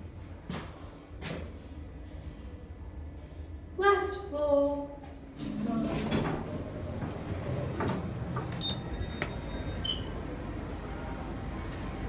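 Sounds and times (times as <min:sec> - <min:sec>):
lift doors sliding open: 0:05.4 - 0:10.6.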